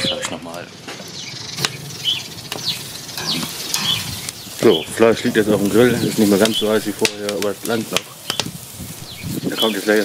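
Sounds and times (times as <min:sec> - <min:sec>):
bird chirps: 0:00.0 - 0:07.0, 0:08.2 - 0:10.0.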